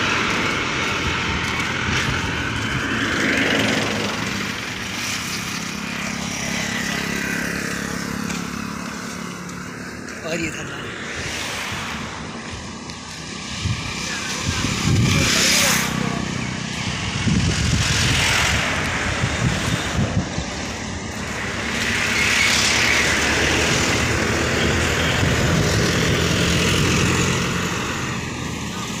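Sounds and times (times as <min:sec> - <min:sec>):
road traffic: 0:00.0 - 0:29.0
truck engine running: 0:00.0 - 0:29.0.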